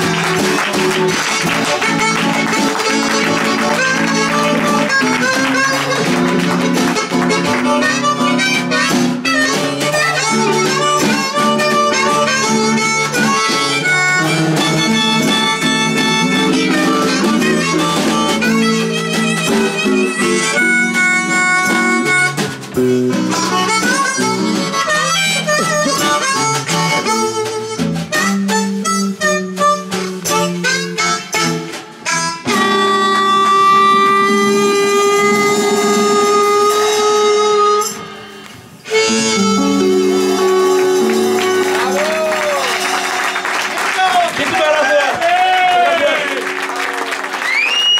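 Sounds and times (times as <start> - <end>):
blues harmonica solo: 0.0 - 44.2
strummed guitar: 0.0 - 47.9.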